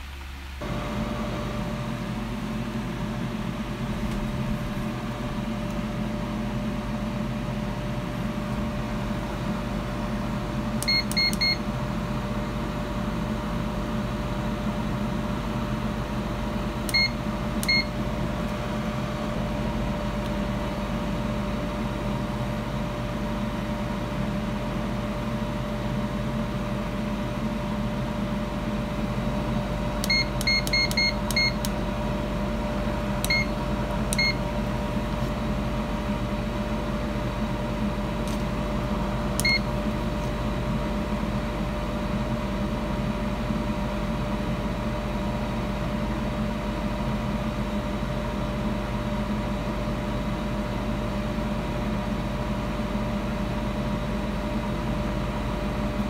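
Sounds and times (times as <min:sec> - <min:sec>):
air fryer fan humming: 0:00.0 - 0:56.0.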